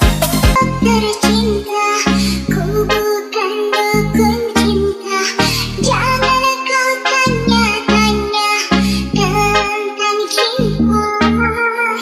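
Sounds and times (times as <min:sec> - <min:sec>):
dj remix music with heavy bass: 0:00.0 - 0:12.0
processed sung vocal: 0:00.4 - 0:12.0.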